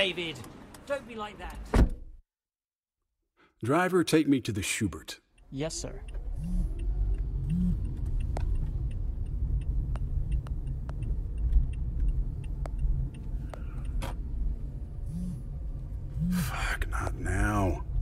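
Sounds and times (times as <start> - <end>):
car engine and road rumble: 5.3 - 18.0.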